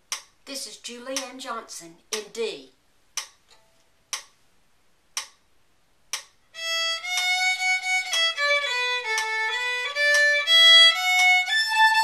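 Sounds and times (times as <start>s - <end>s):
sharp count-in ticks: 0.1s - 2.4s, 3.2s - 3.4s, 4.1s - 4.4s, 5.2s - 5.4s, 6.1s - 6.4s, 7.0s - 12.0s.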